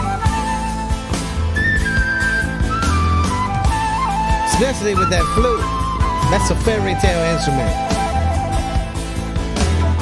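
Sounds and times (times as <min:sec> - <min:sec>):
bass guitar: 0:00.0 - 0:10.0
drums: 0:00.0 - 0:10.0
flute melody: 0:00.0 - 0:10.0.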